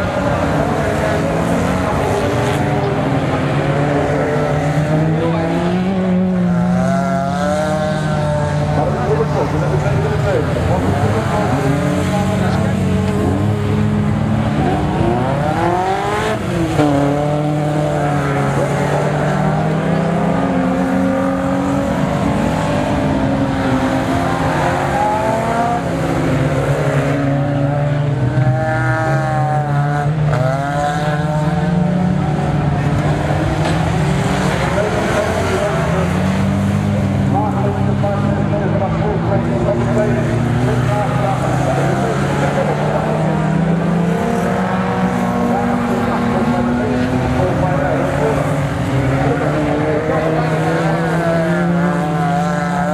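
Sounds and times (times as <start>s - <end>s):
race car engines revving: 0.0s - 52.9s.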